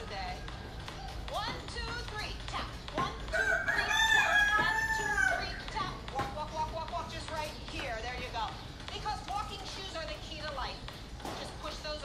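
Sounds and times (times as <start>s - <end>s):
rooster crowing: 3.3s - 5.5s.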